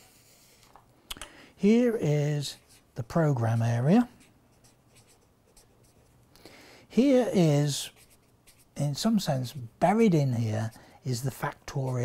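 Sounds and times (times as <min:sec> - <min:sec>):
marker writing on paper: 0:02.4 - 0:06.1, 0:07.9 - 0:08.8, 0:09.5 - 0:12.0.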